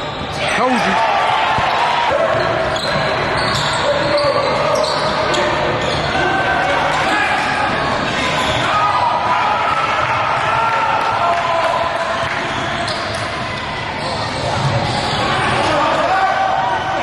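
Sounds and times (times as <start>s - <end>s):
sneakers squeaking: 0.0s - 8.8s, 12.1s - 15.8s
voices of players and spectators: 0.0s - 17.0s.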